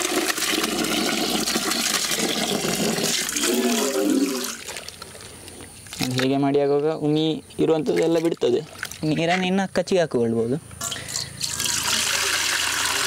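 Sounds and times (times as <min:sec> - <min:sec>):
water pouring into bucket: 0:00.0 - 0:05.2, 0:07.8 - 0:09.1, 0:10.8 - 0:13.0.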